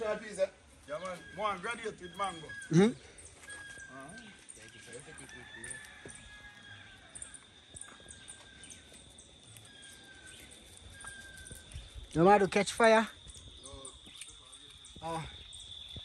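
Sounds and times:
distant bird calls: 0.0s - 5.2s, 6.0s - 16.0s
rooster crowing: 4.8s - 7.6s.

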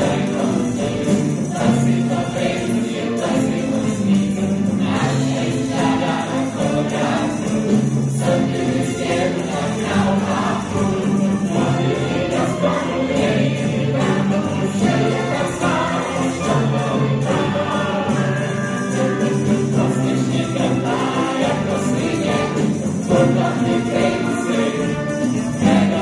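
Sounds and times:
cast singing as a choir: 0.0s - 26.0s
instrumental accompaniment: 0.0s - 26.0s.

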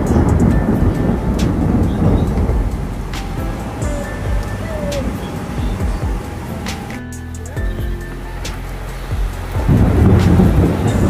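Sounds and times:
loud deep rumble: 0.0s - 11.0s
rain hiss: 0.0s - 11.0s
surf: 0.0s - 11.0s.

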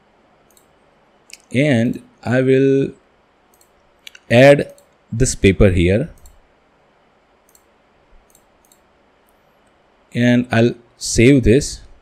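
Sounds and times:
faint computer mouse clicks: 0.5s - 0.7s, 3.5s - 5.0s, 6.2s - 6.4s, 7.4s - 9.8s
person speaking: 1.3s - 3.0s, 4.1s - 6.2s.

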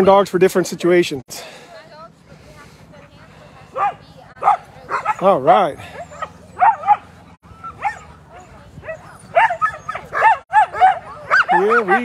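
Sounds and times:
sled dogs barking: 2.6s - 12.0s.

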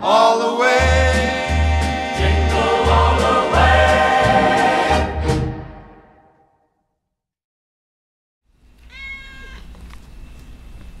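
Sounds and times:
cat meowing: 8.8s - 9.8s.

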